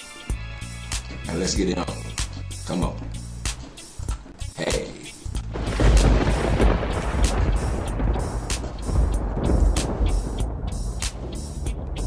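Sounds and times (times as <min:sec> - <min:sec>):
music with a beat: 0:00.0 - 0:12.0.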